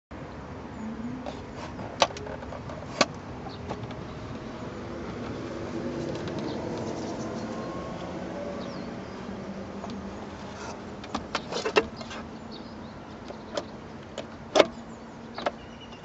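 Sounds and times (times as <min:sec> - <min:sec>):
steady background noise: 0:00.1 - 0:16.0.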